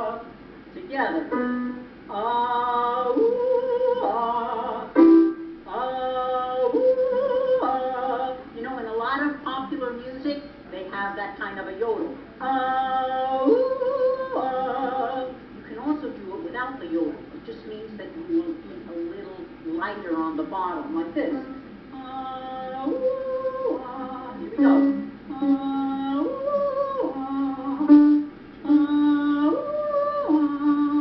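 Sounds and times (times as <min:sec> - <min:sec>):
woman singing vocal exercise: 0:00.0 - 0:10.1, 0:12.4 - 0:17.1, 0:18.2 - 0:31.0.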